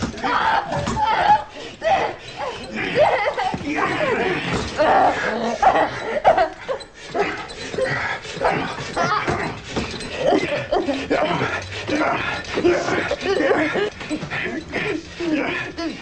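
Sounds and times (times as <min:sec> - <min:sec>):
people's voices: 0:00.0 - 0:16.0.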